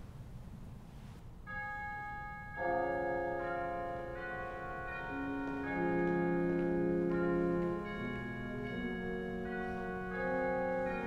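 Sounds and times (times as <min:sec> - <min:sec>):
church organ chords: 0:01.5 - 0:11.0.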